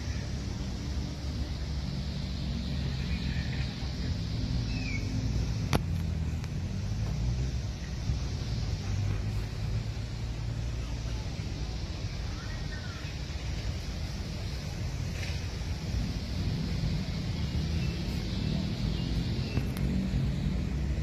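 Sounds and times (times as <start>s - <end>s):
steady low rumble: 0.0s - 21.0s.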